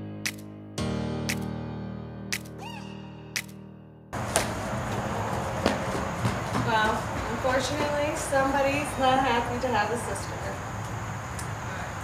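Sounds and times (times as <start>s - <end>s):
steady outdoor hiss: 4.2s - 12.0s.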